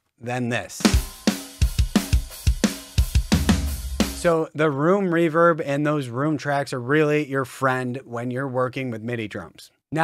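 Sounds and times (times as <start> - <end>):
sampled drum kit beat: 0.6 - 4.4.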